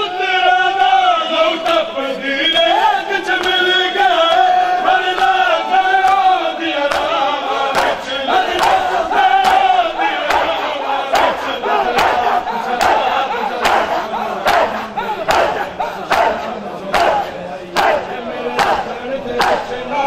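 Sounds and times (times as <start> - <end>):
crowd chanting: 0.0 - 20.0
hands slapping chests: 3.4 - 3.7, 5.1 - 5.4, 6.9 - 19.8.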